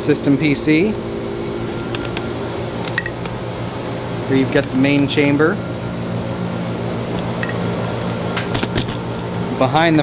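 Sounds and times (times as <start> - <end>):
lab equipment humming: 0.0 - 10.0.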